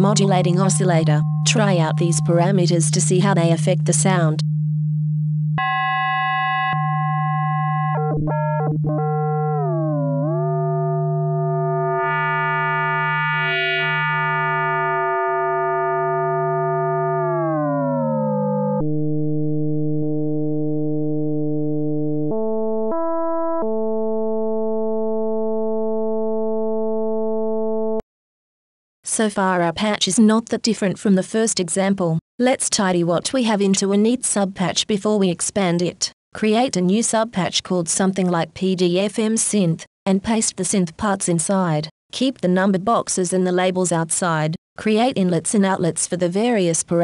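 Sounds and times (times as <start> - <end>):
sustained synth tone: 0.0 - 25.1.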